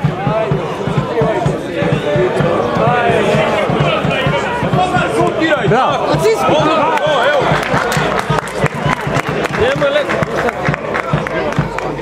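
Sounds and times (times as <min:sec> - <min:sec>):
spectators talking and calling out: 0:00.0 - 0:12.0.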